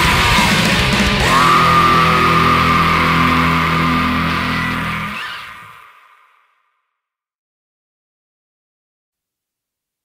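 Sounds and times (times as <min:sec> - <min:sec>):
distorted guitar chord: 0:00.0 - 0:05.7
high feedback whine: 0:00.0 - 0:06.2.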